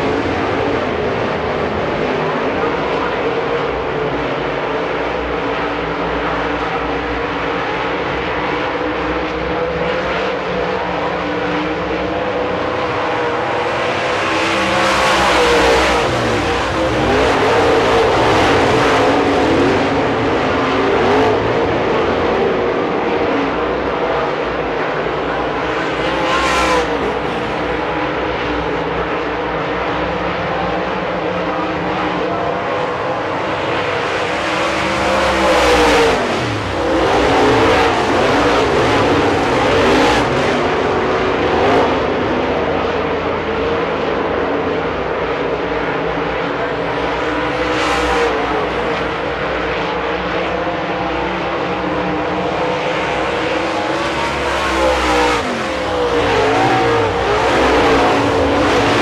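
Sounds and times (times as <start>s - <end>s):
race car engines: 0.0s - 59.0s
race cars passing close: 0.0s - 59.0s.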